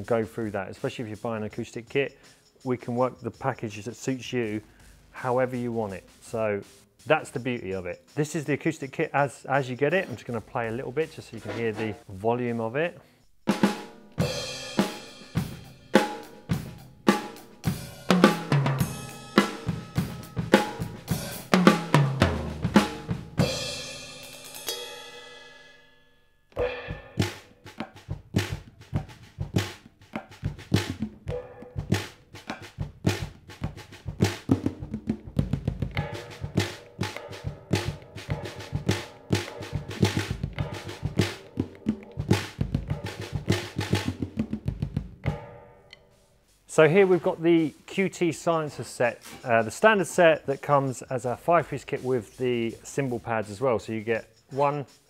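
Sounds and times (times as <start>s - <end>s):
drum kit groove: 0.0s - 25.8s, 26.5s - 55.0s
damped drum hits: 13.4s - 25.4s, 26.6s - 45.7s
cymbals ringing: 13.4s - 28.0s, 31.3s - 32.6s, 35.9s - 44.1s, 45.3s - 55.0s
tom fills: 26.6s - 29.8s.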